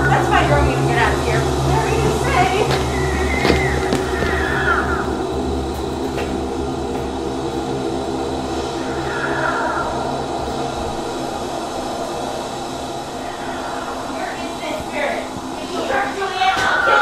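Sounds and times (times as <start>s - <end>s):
low hum with held tones: 0.0s - 17.0s
faint gliding tones: 7.3s - 17.0s.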